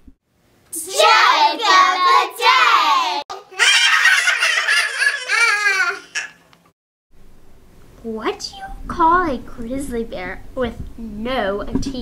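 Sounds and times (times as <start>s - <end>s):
child shrieking: 3.5s - 6.4s.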